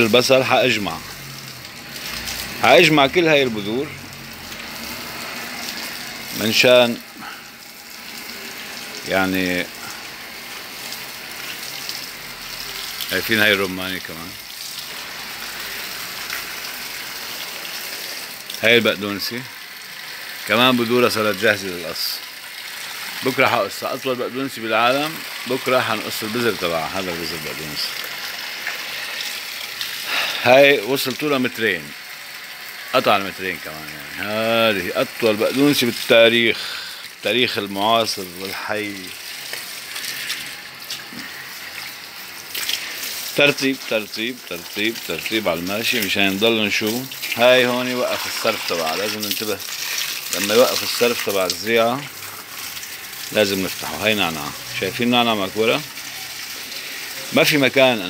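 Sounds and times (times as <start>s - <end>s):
water spraying on leaves: 0.0s - 58.0s.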